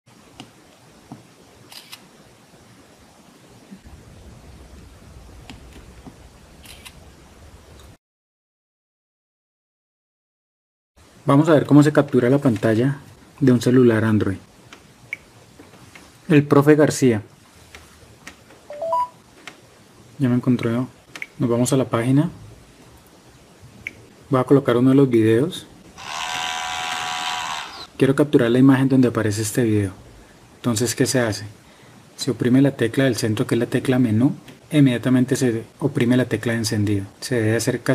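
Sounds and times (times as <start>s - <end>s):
phone camera shutter click: 6.6s - 7.0s
small motor whining: 26.0s - 28.0s.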